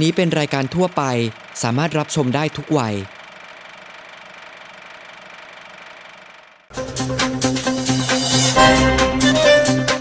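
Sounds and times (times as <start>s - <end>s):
electronic music: 6.7s - 10.0s.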